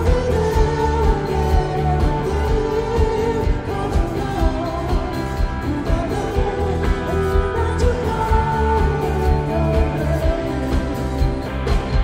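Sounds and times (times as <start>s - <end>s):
live pop band: 0.0s - 12.0s
man singing: 0.0s - 12.0s.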